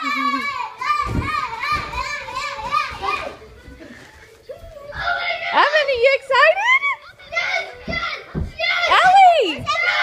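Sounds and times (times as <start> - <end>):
young children shouting and chanting: 0.0 - 3.6, 4.6 - 10.0.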